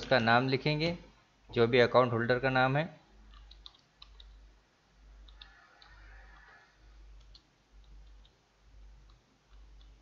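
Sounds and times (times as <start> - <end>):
low electrical hum: 0.0 - 10.0
keyboard keystrokes: 3.3 - 4.4.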